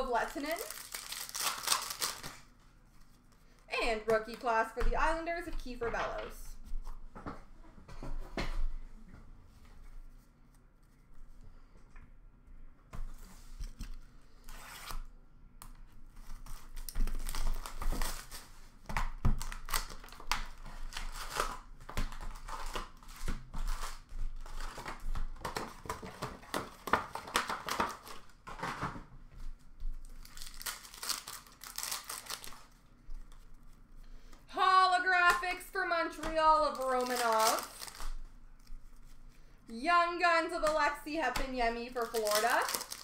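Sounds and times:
card pack wrappers tearing and crinkling: 0.0 - 2.6, 16.2 - 18.6, 19.4 - 28.4, 30.0 - 32.8, 36.6 - 38.8, 41.9 - 43.0.

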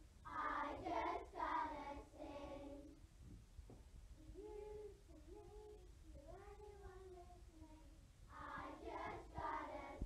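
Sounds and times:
children singing softly: 0.2 - 3.0, 4.2 - 10.0.

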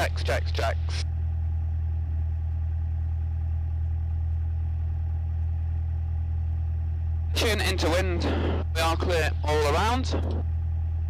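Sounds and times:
aircraft engine droning: 0.0 - 11.0.

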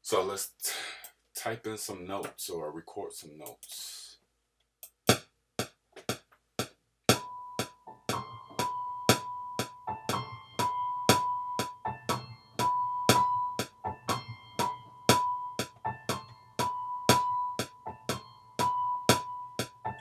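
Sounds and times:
held keyboard notes: 7.1 - 20.0.

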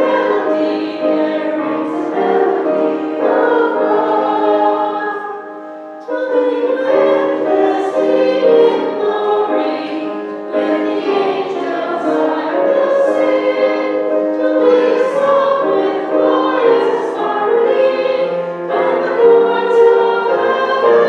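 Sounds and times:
woman and man singing a hymn: 0.0 - 5.4, 6.1 - 21.0
instrumental accompaniment: 0.0 - 21.0.

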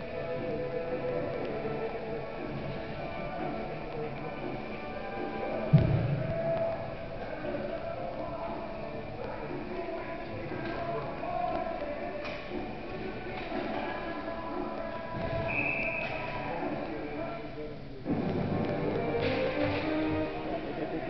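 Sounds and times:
indistinct voices: 0.0 - 21.0
music: 0.0 - 21.0.

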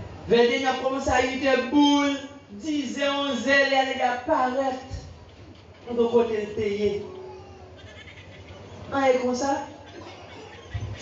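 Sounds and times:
room and microphone noise: 0.0 - 11.0
man speaking amplified: 0.2 - 5.2, 5.8 - 7.4, 8.9 - 9.8.

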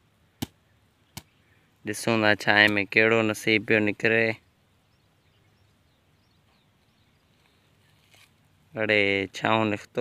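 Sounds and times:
man speaking: 1.8 - 4.4, 8.7 - 10.0.

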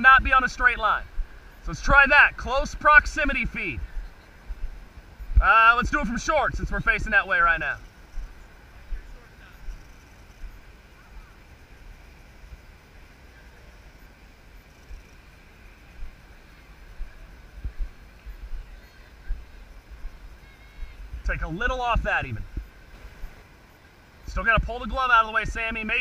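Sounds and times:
faint distant voices: 0.0 - 26.0
wind on microphone: 1.0 - 11.7, 14.8 - 23.5.

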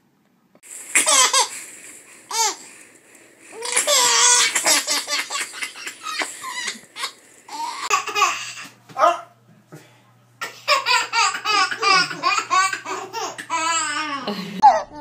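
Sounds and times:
babies laughing: 1.0 - 1.6, 2.3 - 2.7, 3.5 - 8.8, 10.4 - 15.0.

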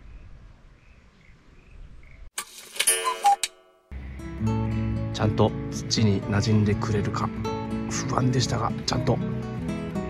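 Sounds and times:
faint outdoor background: 0.0 - 10.0
ringing chime: 2.8 - 3.9
guitar music: 3.9 - 10.0.

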